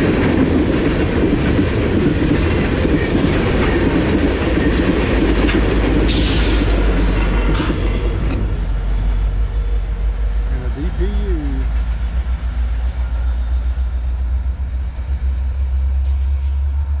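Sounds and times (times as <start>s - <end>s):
freight train diesel rumble: 0.0s - 17.0s.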